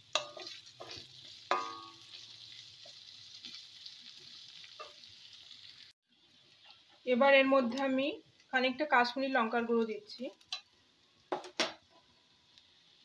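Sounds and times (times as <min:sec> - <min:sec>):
wooden spatula scraping a wok: 0:00.0 - 0:05.0
garlic sizzling in hot oil: 0:00.0 - 0:13.0.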